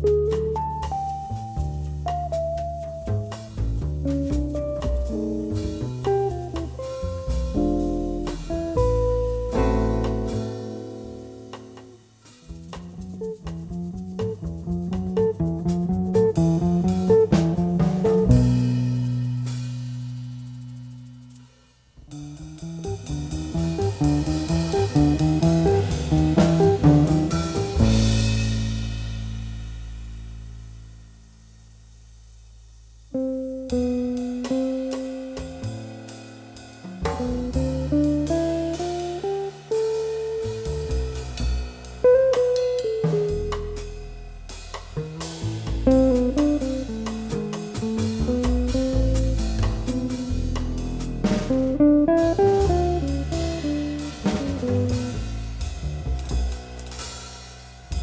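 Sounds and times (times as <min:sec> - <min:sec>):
bass: 0:00.0 - 0:58.0
drums: 0:00.0 - 0:58.0.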